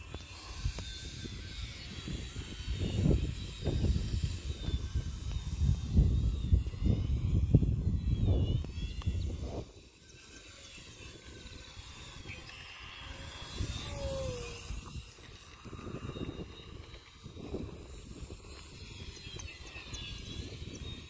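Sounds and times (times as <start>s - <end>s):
model airplane motor whine: 0.0s - 21.0s
wind buffeting microphone: 0.0s - 21.0s.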